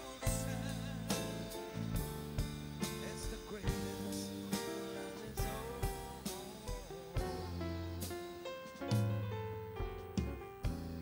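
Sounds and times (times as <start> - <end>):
acoustic guitar: 0.0 - 11.0
bass: 0.0 - 11.0
drum kit steady beat: 0.0 - 11.0
keyboard: 0.0 - 11.0.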